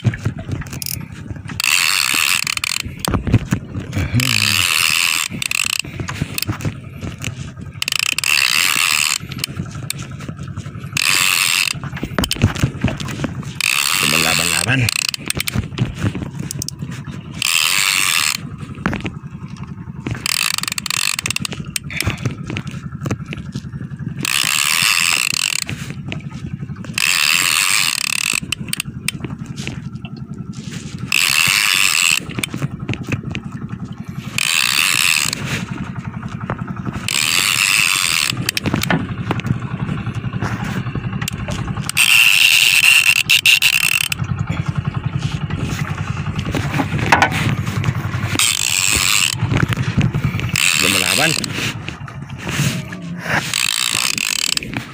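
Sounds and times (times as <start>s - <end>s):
fishing reel ratcheting tick: 0.0s - 54.9s.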